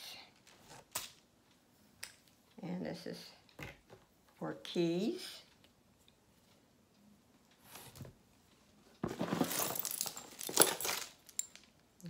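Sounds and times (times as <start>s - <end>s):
jewelry dropped and clattering: 9.0s - 11.7s.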